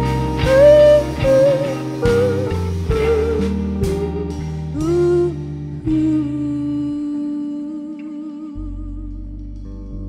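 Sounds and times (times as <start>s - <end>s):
long held note: 0.0s - 9.1s
wavering higher tone: 0.0s - 9.1s
electric bass: 0.0s - 10.0s
electric piano: 0.0s - 10.0s.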